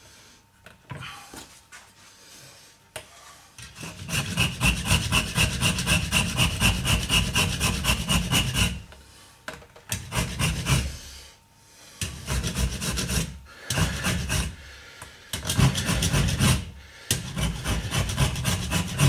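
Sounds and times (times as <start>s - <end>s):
hand rasp scraping wood: 3.6s - 8.9s, 9.9s - 11.0s, 12.0s - 14.6s, 15.4s - 19.0s.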